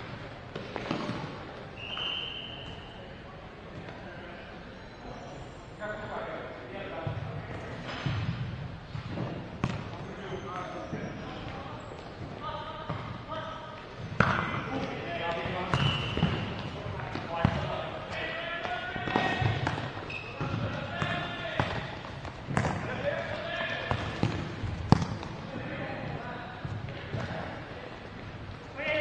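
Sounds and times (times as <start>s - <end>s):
ball kicked and bouncing on court: 0.5s - 1.4s, 7.0s - 10.7s, 14.0s - 17.8s, 18.6s - 27.5s.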